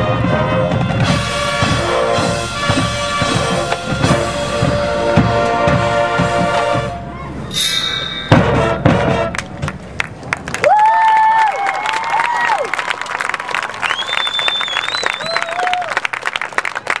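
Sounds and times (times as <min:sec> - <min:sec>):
marching band chord: 0:00.0 - 0:10.1
audience applauding and cheering: 0:09.3 - 0:17.0
high whoops: 0:10.6 - 0:13.1, 0:13.8 - 0:16.0.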